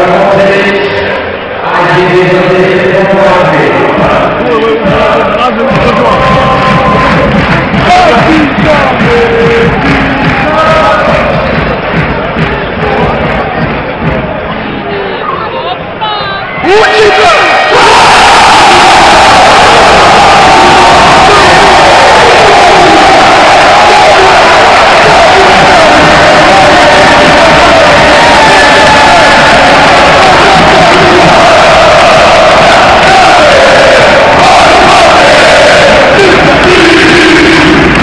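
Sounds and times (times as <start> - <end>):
arena crowd singing and chanting: 0.0 - 38.0.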